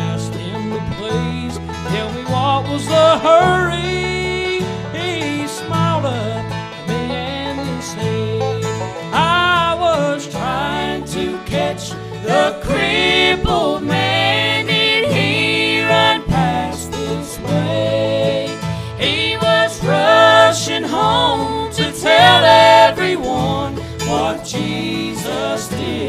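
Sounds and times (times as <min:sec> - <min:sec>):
acoustic guitar: 0:00.0 - 0:26.0
banjo: 0:00.0 - 0:26.0
fiddle: 0:00.0 - 0:26.0
man singing with vibrato: 0:00.0 - 0:26.0
mandolin: 0:00.0 - 0:26.0
walking electric bass line: 0:00.0 - 0:26.0.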